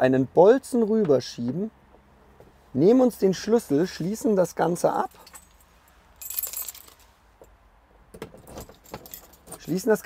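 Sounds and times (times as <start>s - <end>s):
keys jingling: 5.0s - 7.1s, 8.3s - 10.0s.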